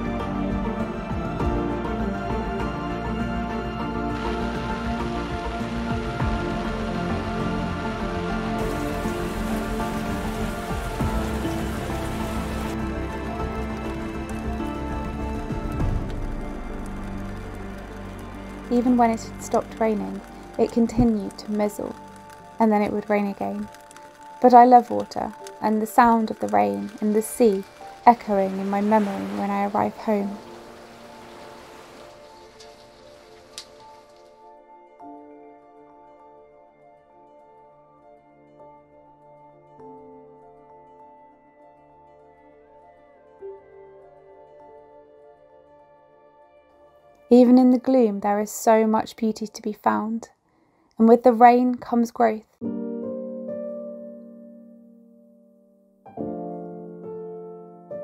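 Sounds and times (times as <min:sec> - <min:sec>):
soft background music: 0:00.0 - 0:50.2, 0:51.0 - 0:58.0
steady rain falling: 0:02.1 - 0:34.6.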